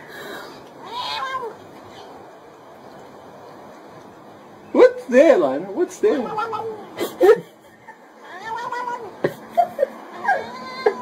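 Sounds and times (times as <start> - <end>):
cat meowing: 0.8 - 2.1, 6.2 - 7.0, 8.2 - 9.3, 10.1 - 11.0.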